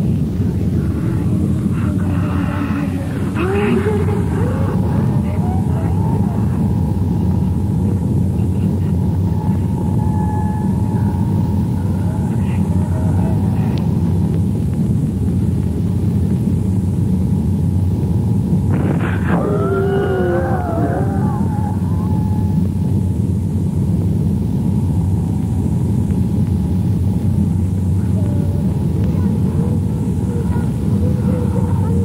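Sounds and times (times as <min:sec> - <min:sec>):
faint wavering tones: 0:00.0 - 0:14.7, 0:17.8 - 0:32.0
heavy low rumble: 0:00.0 - 0:32.0.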